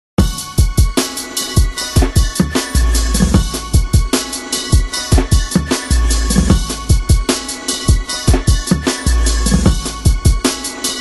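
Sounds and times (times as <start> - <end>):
busy hi-hats: 0.2 - 11.0
kick drum hits: 6.5 - 7.3.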